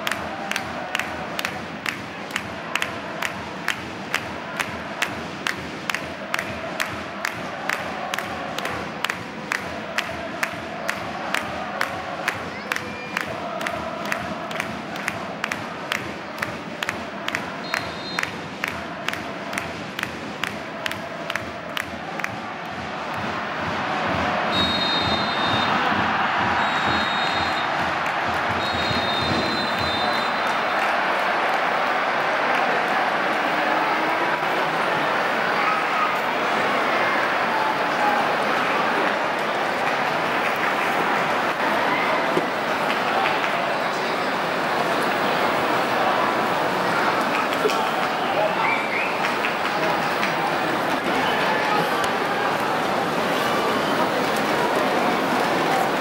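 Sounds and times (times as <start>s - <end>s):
crowd chanting to rhythmic beats: 0.0s - 56.0s
referee whistle blasts: 17.6s - 18.3s, 24.5s - 25.9s, 26.6s - 27.8s, 28.5s - 30.7s, 48.6s - 49.2s.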